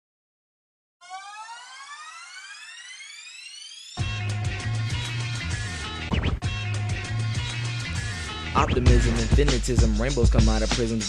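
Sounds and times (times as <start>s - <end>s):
rising synthesized tone: 1.0s - 4.2s
hip-hop beat: 4.0s - 11.0s.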